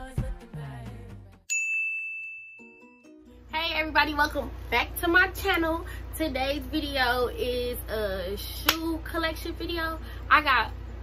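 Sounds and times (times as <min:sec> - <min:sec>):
high bright chime ding: 0:01.5 - 0:03.2.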